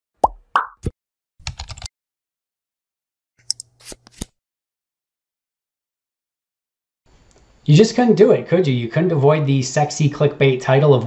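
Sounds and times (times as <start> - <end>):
rapid typing clicks: 1.4 - 1.9.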